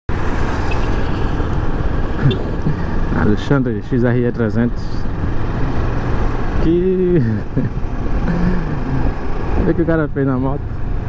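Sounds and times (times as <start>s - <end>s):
motorcycle engine rumble: 0.1s - 3.6s.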